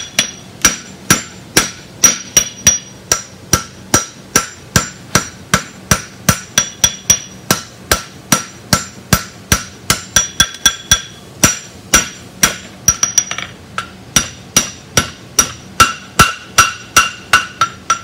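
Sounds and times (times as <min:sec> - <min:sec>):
hammer striking steel on anvil: 0:00.0 - 0:18.0
metallic anvil ring: 0:00.0 - 0:18.0.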